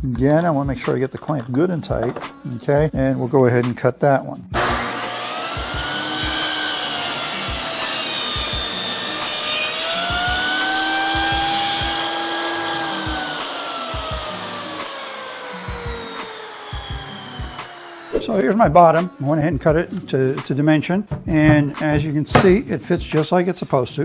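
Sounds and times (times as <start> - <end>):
table saw cutting wood: 4.6 - 18.6, 22.3 - 22.6.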